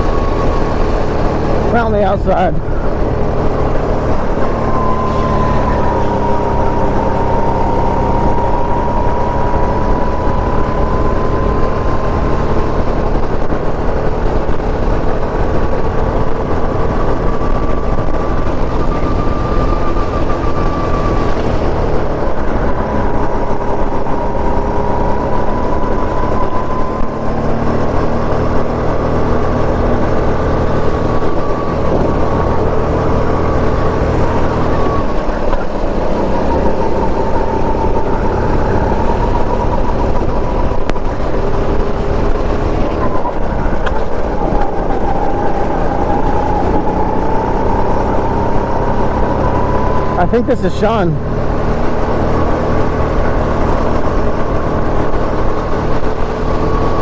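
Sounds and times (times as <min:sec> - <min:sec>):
go-kart engine running hard: 0:00.0 - 0:57.0.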